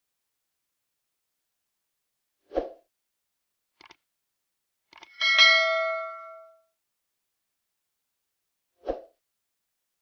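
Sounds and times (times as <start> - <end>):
bright bell ding: 5.2 - 6.6.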